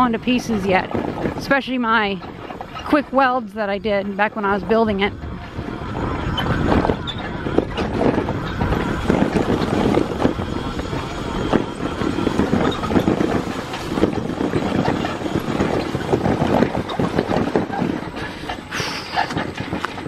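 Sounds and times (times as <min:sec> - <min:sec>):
bicycle rattling over rough path: 0:00.0 - 0:20.0
bicycle knocking over bumps: 0:05.2 - 0:18.6.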